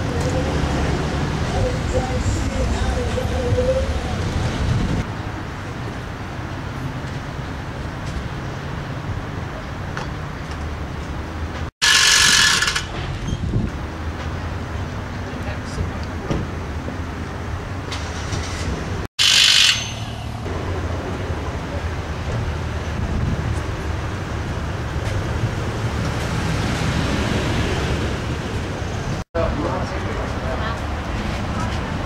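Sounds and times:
road traffic rumble: 0.0 - 32.0
vehicle passing: 24.7 - 32.0.

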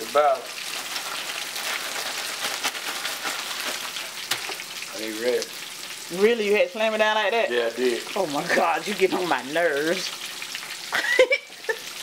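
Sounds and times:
fish frying in hot oil: 0.0 - 12.0.

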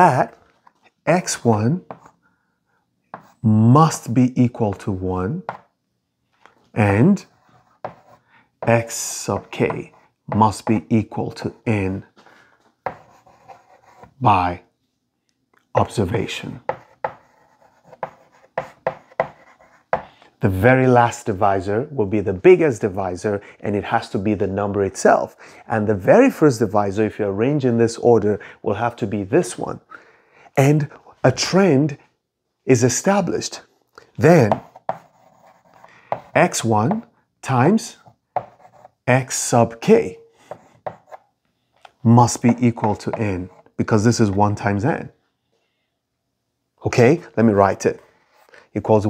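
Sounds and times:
chalk writing on a blackboard: 1.9 - 2.2, 3.1 - 3.4, 7.2 - 8.7, 9.4 - 10.6, 12.8 - 14.2, 16.6 - 20.2, 34.4 - 37.0, 38.1 - 39.0, 40.4 - 41.2.

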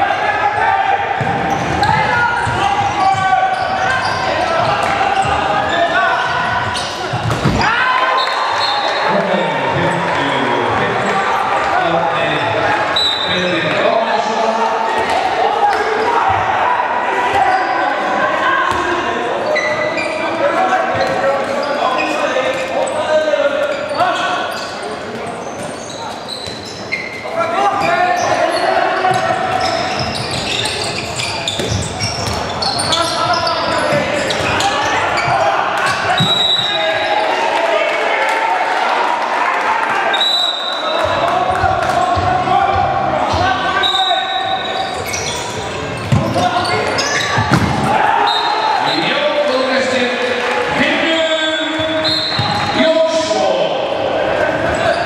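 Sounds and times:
voices talking and calling: 0.0 - 37.6
handball bouncing on wooden court: 1.2 - 3.3, 4.6 - 5.4, 6.6 - 7.7, 29.1 - 36.7, 46.0 - 46.6, 47.2 - 47.9, 51.8 - 52.8.

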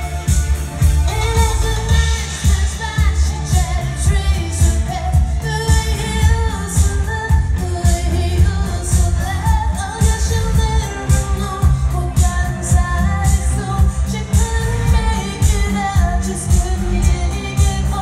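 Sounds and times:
live pop band playing: 0.0 - 18.0
steady drum beat: 0.0 - 18.0
woman singing lead: 0.0 - 18.0.

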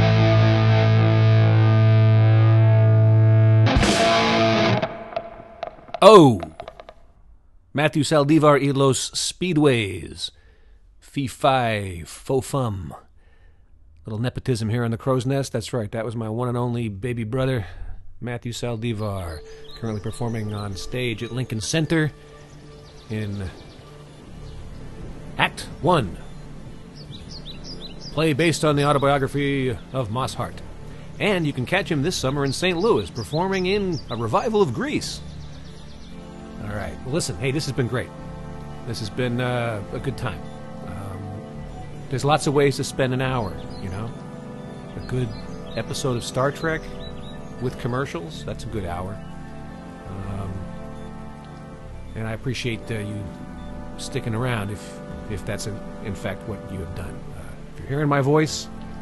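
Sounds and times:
guitar chord ringing: 0.0 - 6.4
loud final band hit: 3.6 - 6.2
small bird chirping: 26.2 - 30.2.

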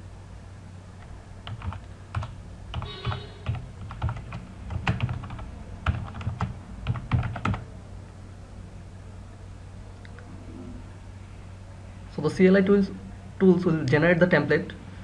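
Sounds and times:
typing on computer keyboard: 1.4 - 7.7.

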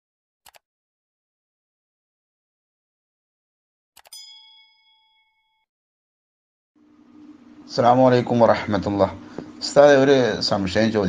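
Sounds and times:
bell-like notification ding: 4.1 - 5.7.

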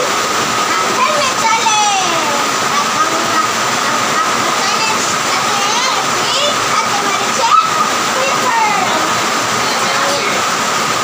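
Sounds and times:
loud rushing noise: 0.0 - 11.0
children calling out: 0.7 - 9.3.

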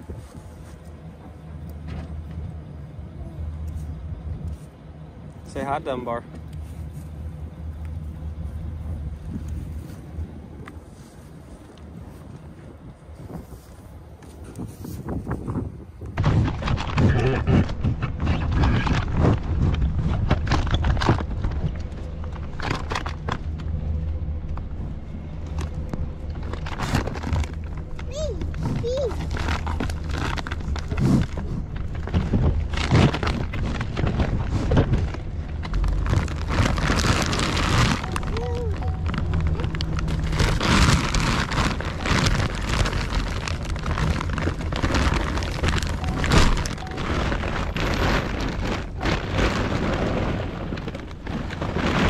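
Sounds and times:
steady low rumble: 0.0 - 52.0.

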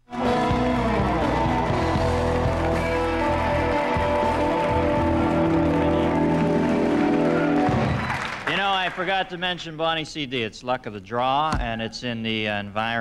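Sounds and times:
instrumental band music: 0.0 - 8.5.

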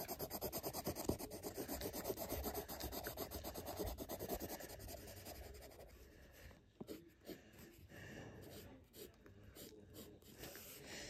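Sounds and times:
pencil scratching on paper: 0.0 - 7.8, 8.4 - 10.8.

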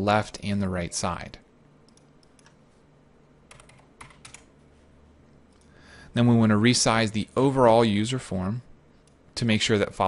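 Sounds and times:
low steady hum: 0.0 - 10.0
keyboard and mouse clicks: 1.8 - 2.6, 3.5 - 4.5.

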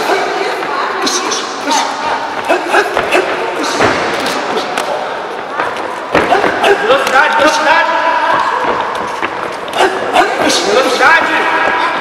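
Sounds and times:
voices echoing in a hall: 0.0 - 12.0.

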